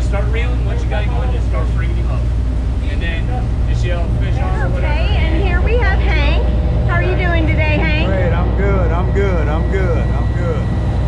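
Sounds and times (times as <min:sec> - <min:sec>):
people talking: 0:00.0 - 0:10.7
boat engine drone: 0:00.0 - 0:11.0.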